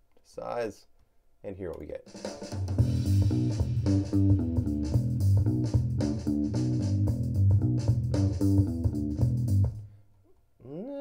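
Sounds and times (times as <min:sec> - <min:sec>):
drums: 0:01.7 - 0:10.0
bass guitar: 0:02.8 - 0:09.9.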